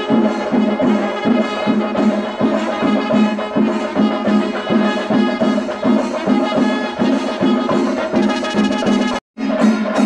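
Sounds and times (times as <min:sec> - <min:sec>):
drums and cymbals: 0:00.0 - 0:10.0.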